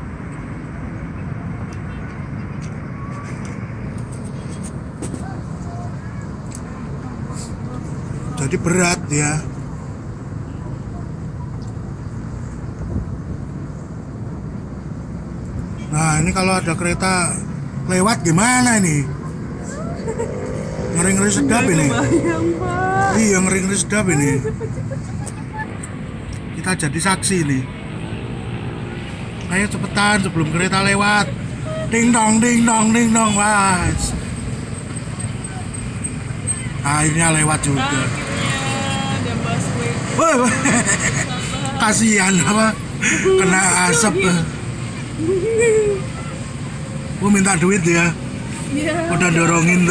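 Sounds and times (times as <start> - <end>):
distant street rumble: 0.0 - 49.9
man exclaiming: 19.6 - 24.5, 30.3 - 34.2, 40.0 - 44.6.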